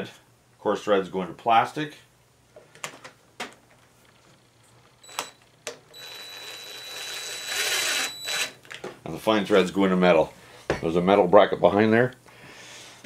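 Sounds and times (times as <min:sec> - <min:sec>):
drill driver motor running: 0:05.9 - 0:08.6.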